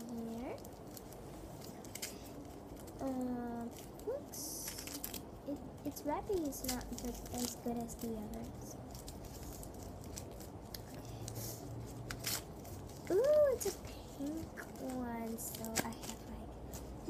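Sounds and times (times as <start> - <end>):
paper wrapping crinkling and tearing: 0.0 - 17.0
child murmuring: 3.0 - 4.6, 13.1 - 16.4.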